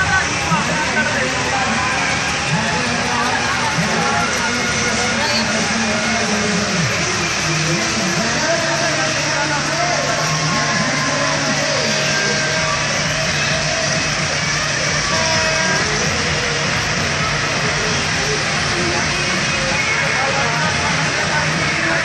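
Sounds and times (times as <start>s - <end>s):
crowd voices: 0.0s - 22.0s
engines running: 0.0s - 22.0s.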